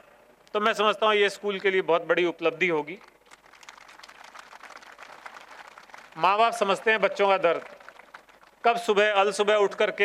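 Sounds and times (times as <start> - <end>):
audience applauding: 3.3 - 8.6.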